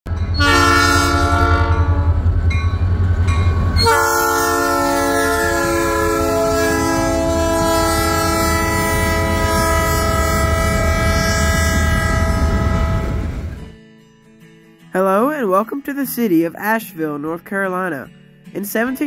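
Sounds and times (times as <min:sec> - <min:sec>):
locomotive engine rumble: 0:00.1 - 0:13.7
locomotive air horn chord: 0:00.3 - 0:02.2, 0:03.8 - 0:13.6.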